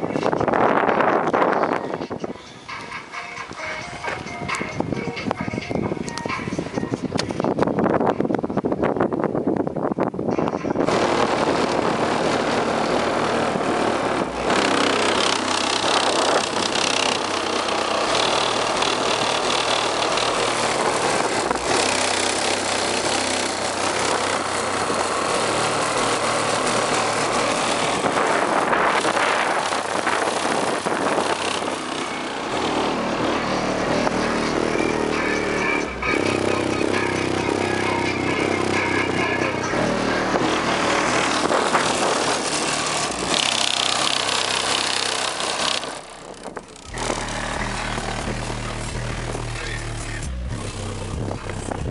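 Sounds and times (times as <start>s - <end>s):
loud bass-heavy hip-hop: 0.0s - 8.5s, 10.2s - 43.5s, 46.0s - 51.9s.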